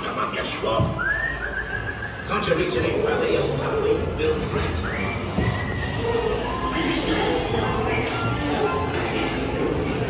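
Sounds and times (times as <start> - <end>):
murmur of soundtrack voices: 0.0 - 10.0
person whistling: 1.0 - 2.3.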